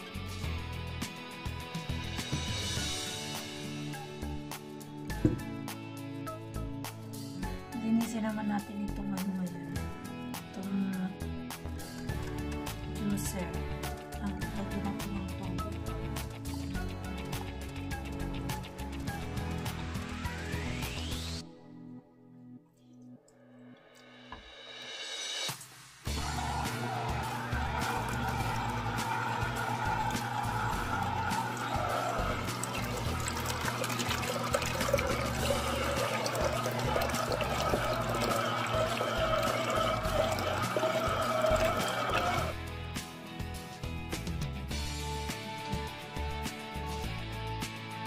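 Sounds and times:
juice pouring into a glass pitcher: 26.1s - 42.6s.

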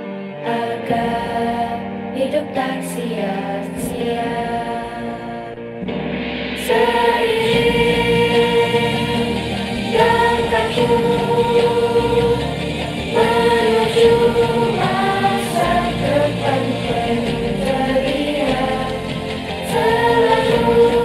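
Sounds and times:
choir singing long held notes: 0.4s - 5.8s, 6.5s - 21.0s.

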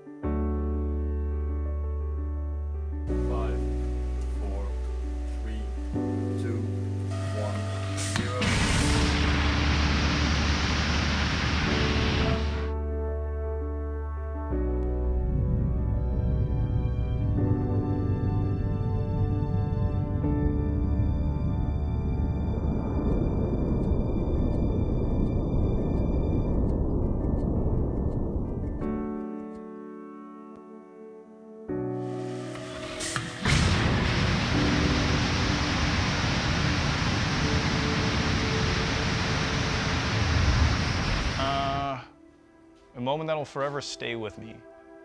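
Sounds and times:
background music: 0.0s - 45.0s
piano-like notes: 0.0s - 45.0s
rocket engine roaring: 7.4s - 12.8s, 21.1s - 29.0s, 32.2s - 41.6s.

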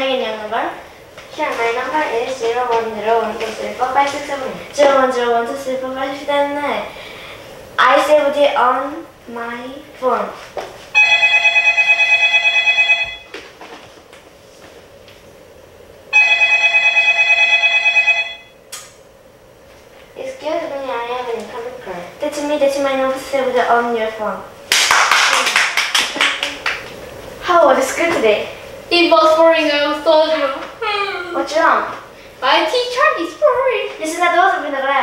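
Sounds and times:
mobile phone ringing: 11.0s - 13.4s, 16.2s - 18.6s
people clapping: 24.7s - 27.0s.

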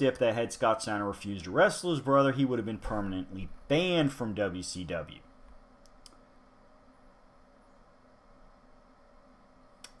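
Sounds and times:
faint short clicks: 9.8s - 10.0s.

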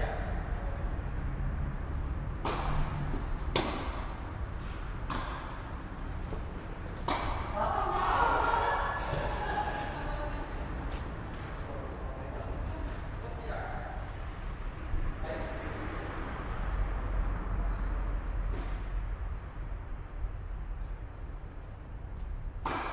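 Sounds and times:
tennis ball hitting racquet: 2.3s - 8.0s, 22.6s - 22.9s.

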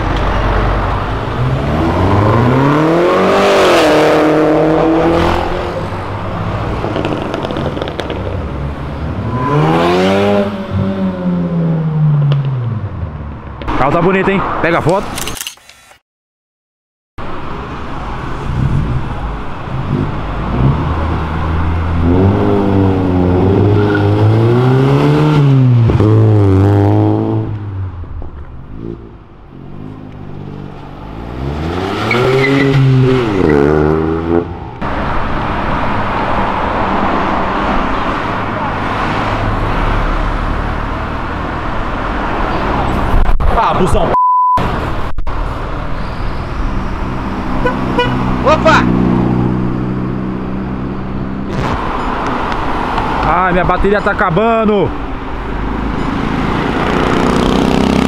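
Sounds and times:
car engine revving: 0.0s - 13.0s, 18.4s - 43.3s
street traffic noise: 0.0s - 16.0s, 17.2s - 58.0s
censor bleep: 44.1s - 44.6s.

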